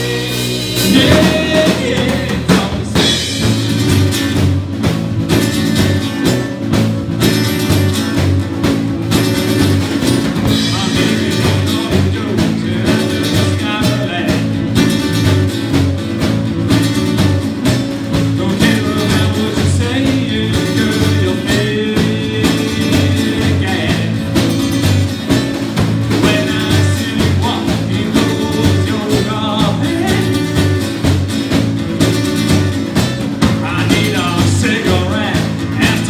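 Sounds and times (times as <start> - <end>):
acoustic guitars strummed: 0.0 - 36.0
bass guitar: 0.0 - 36.0
drum kit rock beat: 0.0 - 36.0.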